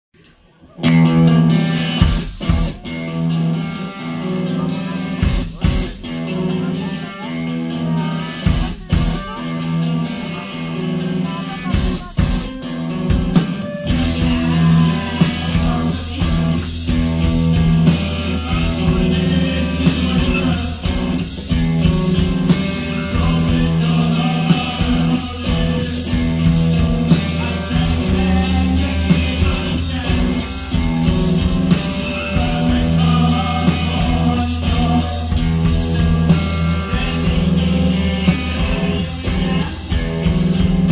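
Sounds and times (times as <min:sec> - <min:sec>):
electric guitars: 0:00.3 - 0:40.9
bass guitar: 0:00.7 - 0:40.9
live rock band playing: 0:00.8 - 0:40.9
person singing: 0:00.8 - 0:40.9
drum kit with cymbals: 0:00.9 - 0:40.9.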